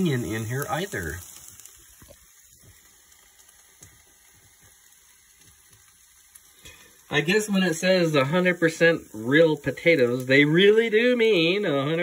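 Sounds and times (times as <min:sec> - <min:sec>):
potatoes sizzling in a pan: 0:00.0 - 0:12.0
small crackles: 0:00.0 - 0:12.0.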